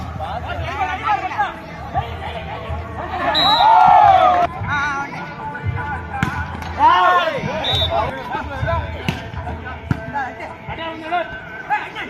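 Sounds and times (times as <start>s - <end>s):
spectators shouting: 3.0s - 4.5s
volleyball being hit: 6.2s - 6.7s.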